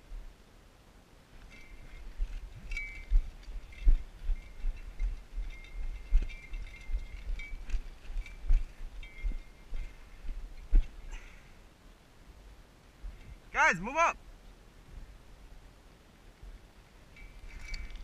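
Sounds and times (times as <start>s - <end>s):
metallic jingling of gear: 1.5s - 10.7s, 17.2s - 18.0s.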